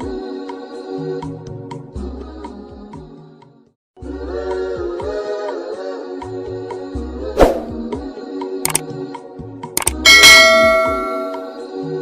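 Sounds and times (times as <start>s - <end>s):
background music: 0.0s - 12.0s
mouse clicks: 8.6s - 8.8s, 9.8s - 10.0s
notification bell ding: 10.1s - 11.6s.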